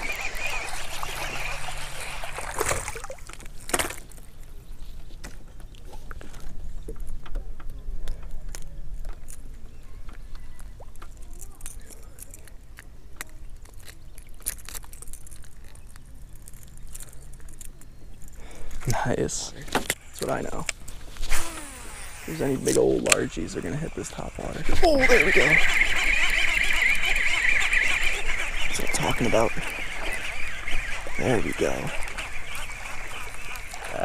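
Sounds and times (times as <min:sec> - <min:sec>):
fish splashing in water: 0:00.0 - 0:04.3.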